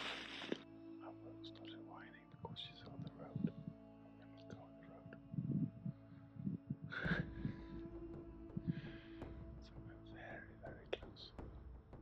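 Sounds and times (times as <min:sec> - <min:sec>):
person whispering: 0:01.0 - 0:07.9, 0:09.7 - 0:11.4.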